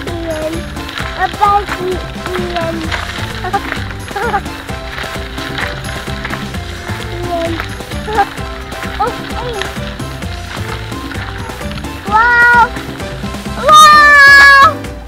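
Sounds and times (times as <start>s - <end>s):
music playing: 0.0s - 15.0s.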